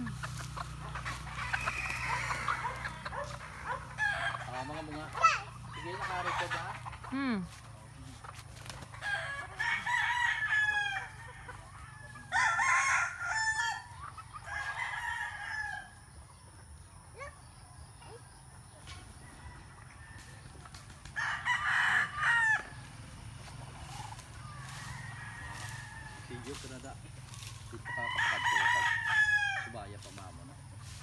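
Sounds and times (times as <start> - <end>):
roosters crowing: 0.0 - 17.6, 18.8 - 31.0.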